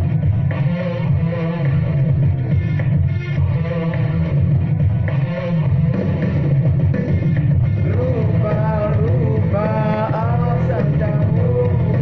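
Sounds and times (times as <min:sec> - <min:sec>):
pop guitar over heavy bass: 0:00.0 - 0:12.0.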